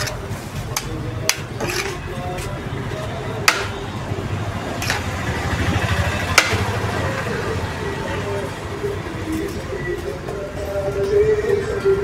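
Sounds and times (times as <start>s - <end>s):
low engine-like rumble: 1.9s - 10.6s
spoon knocking metal pot: 3.4s - 3.8s, 6.3s - 6.7s.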